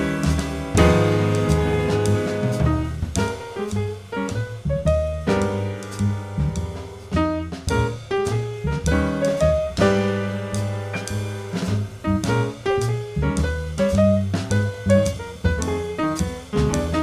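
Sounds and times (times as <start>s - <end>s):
drum kit played with sticks: 0.0s - 17.0s
upright piano chords: 0.0s - 17.0s
walking double bass: 0.0s - 17.0s.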